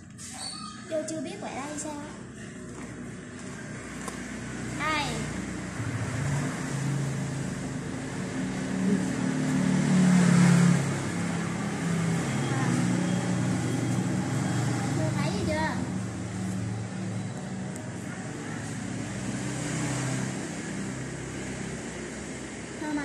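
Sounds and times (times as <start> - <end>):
vehicle engine droning: 1.8 - 23.0.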